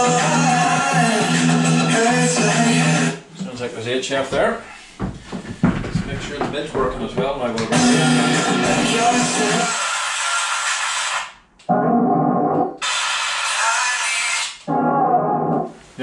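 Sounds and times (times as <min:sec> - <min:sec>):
radio music through speaker: 0:07.6 - 0:14.6.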